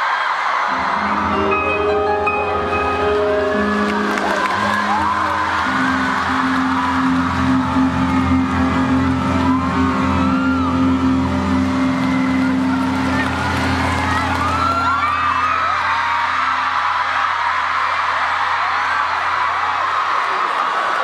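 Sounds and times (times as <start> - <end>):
crowd voices gliding: 0.0 - 21.0
synthesizer bass chords: 0.7 - 20.1.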